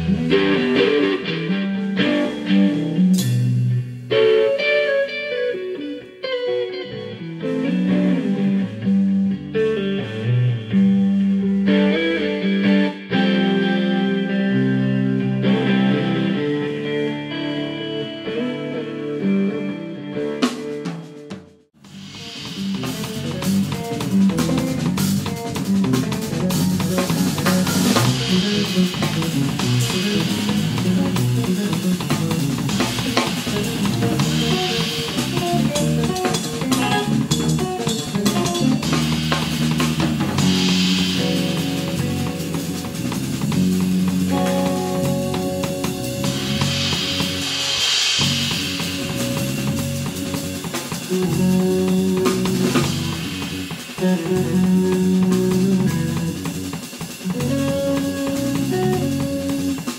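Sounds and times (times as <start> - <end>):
drum kit and cymbals: 0.0 - 13.6, 20.2 - 59.9
bass guitar: 0.0 - 59.9
electric guitar: 0.0 - 59.9.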